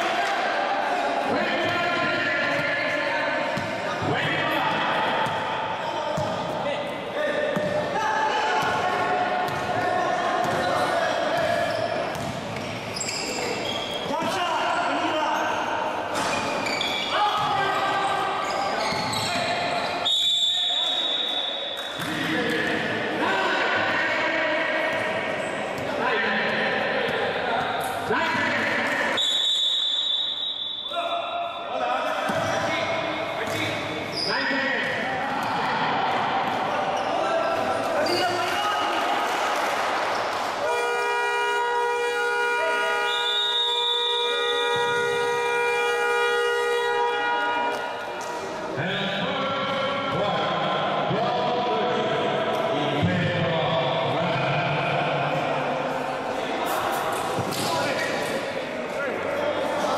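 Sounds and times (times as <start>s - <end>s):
voices in a large hall: 0.0s - 59.9s
basketball bouncing on court: 3.6s - 4.2s, 6.1s - 6.6s, 7.5s - 7.9s, 9.4s - 9.8s, 11.4s - 12.9s
referee's whistle blasts: 18.4s - 22.0s, 29.1s - 31.1s, 40.7s - 47.7s.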